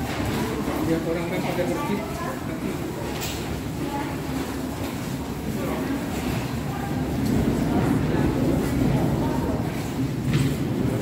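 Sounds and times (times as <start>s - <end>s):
voices of people passing: 0.0s - 11.0s.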